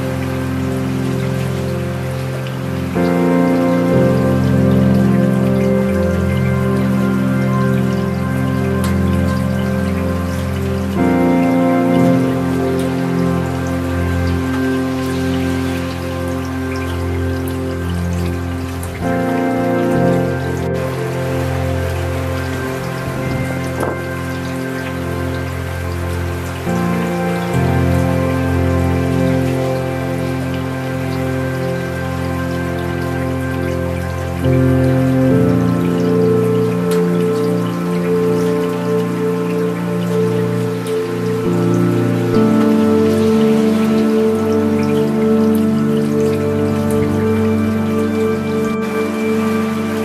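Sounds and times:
slow ambient music: 0:00.0 - 0:50.0
steady rain: 0:00.0 - 0:50.0.

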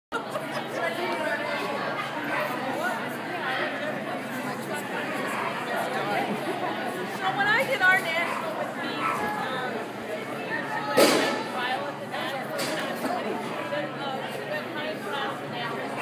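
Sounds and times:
echoing indistinct chatter: 0:00.1 - 0:16.0.

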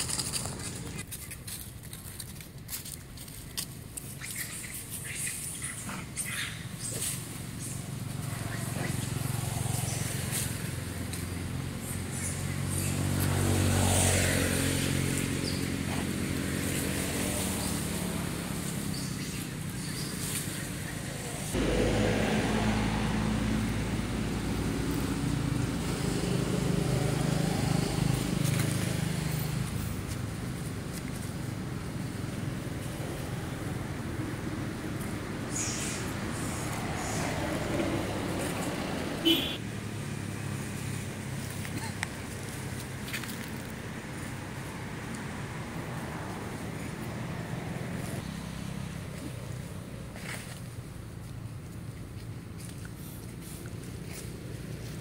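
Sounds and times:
vehicle engine passing: 0:05.7 - 0:55.0.

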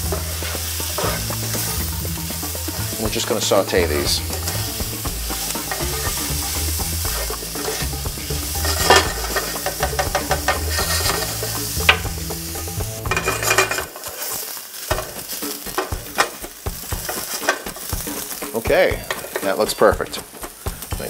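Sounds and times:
spatula scraping and tapping pan: 0:00.0 - 0:20.9
mushrooms sizzling in oil: 0:00.0 - 0:21.0.

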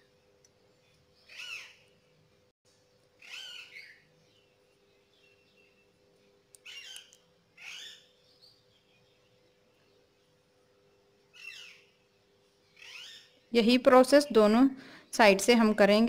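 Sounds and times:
faint steady hum: 0:00.0 - 0:16.0
bird calling: 0:01.2 - 0:01.8, 0:03.2 - 0:04.4, 0:06.6 - 0:08.9, 0:11.3 - 0:12.0.

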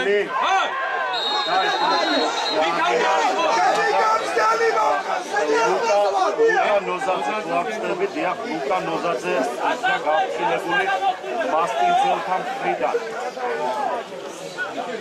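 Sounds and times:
several voices talking: 0:00.0 - 0:15.0.

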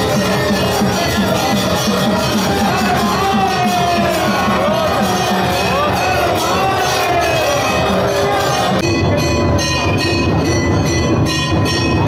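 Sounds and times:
loud ceremonial music: 0:00.0 - 0:12.0
temple bells ringing: 0:00.0 - 0:12.0.

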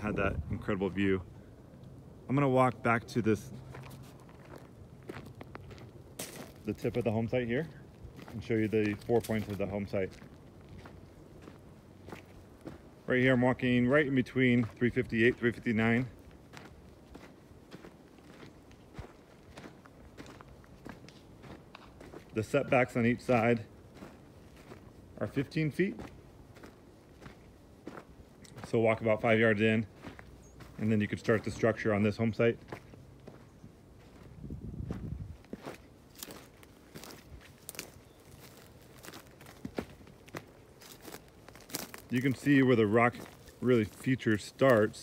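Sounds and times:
footsteps crunching on gravel: 0:02.3 - 0:45.0.

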